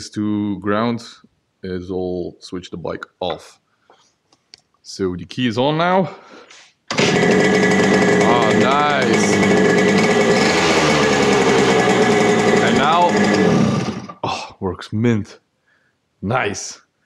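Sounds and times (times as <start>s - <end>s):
two-stroke engine idling: 6.9s - 14.2s.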